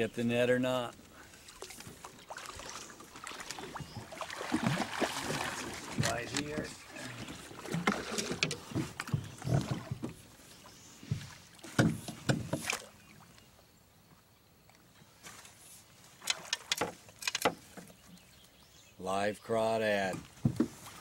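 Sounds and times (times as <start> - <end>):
fish splashing at surface: 1.6 - 6.1
net knocking against boat: 11.0 - 12.8, 20.1 - 20.8.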